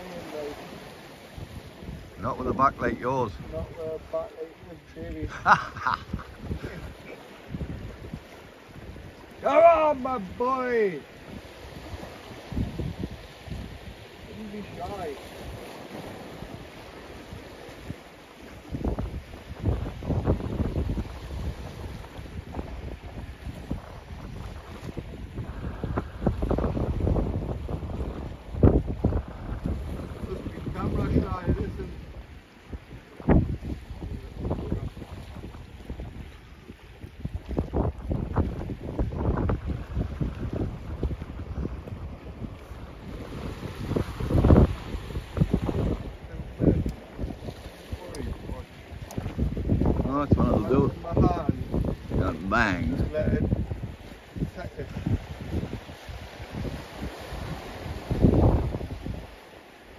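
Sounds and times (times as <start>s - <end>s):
sea washing against rocks: 0.0s - 59.9s
wind buffeting microphone: 0.0s - 59.9s.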